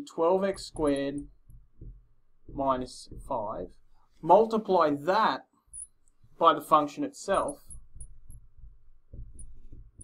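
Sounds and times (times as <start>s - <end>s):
marker knocking on glass: 0.5s - 3.6s, 7.4s - 10.0s
marker tip squeaking on glass: 5.7s - 6.4s, 7.4s - 8.6s.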